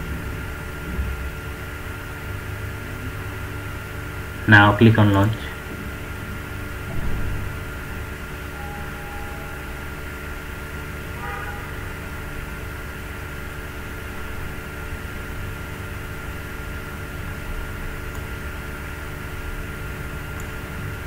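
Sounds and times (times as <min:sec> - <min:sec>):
low background hum: 0:00.0 - 0:21.0
thin high tone: 0:08.4 - 0:10.5.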